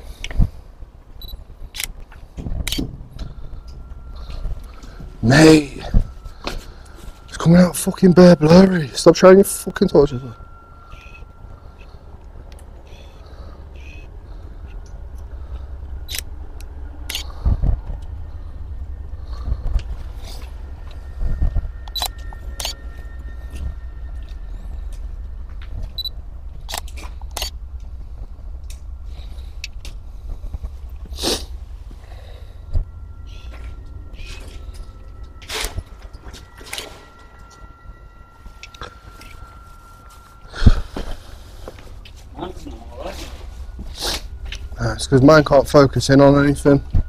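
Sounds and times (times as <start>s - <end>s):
faint high tone: 3.2s - 47.0s.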